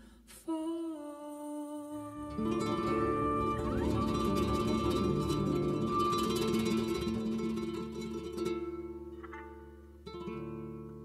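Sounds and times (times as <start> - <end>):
plucked guitar chord: 2.2 - 11.0.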